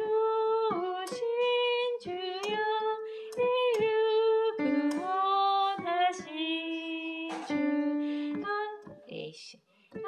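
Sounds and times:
woman singing a hymn: 0.0 - 9.6
digital piano accompaniment: 0.0 - 10.0.

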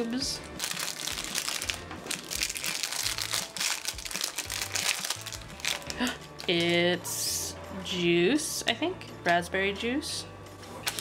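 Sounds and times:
foil wrapper crinkling: 0.6 - 6.7.

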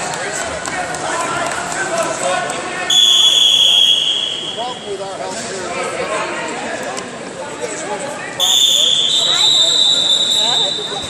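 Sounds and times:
voices chattering in a hall: 0.0 - 11.0.

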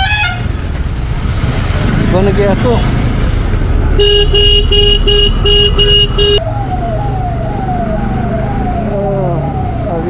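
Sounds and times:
vehicle horn alternating notes: 0.0 - 0.5, 4.0 - 6.4
road noise: 0.0 - 10.0.

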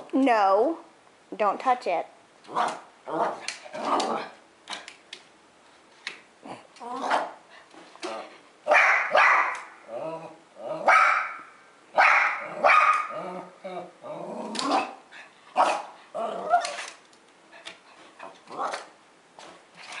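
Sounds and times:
small dog barking: 8.7 - 9.7, 10.8 - 13.2, 15.6 - 15.9.

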